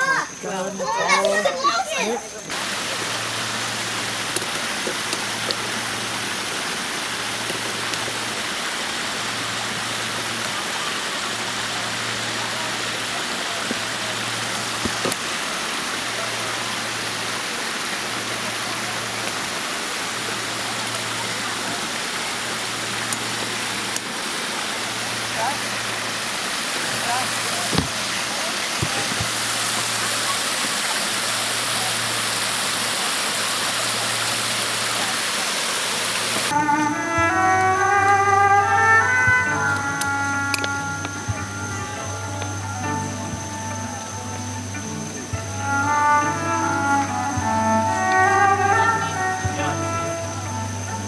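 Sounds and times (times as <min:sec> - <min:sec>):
waterfall spilling over rocks: 0:00.0 - 0:51.0.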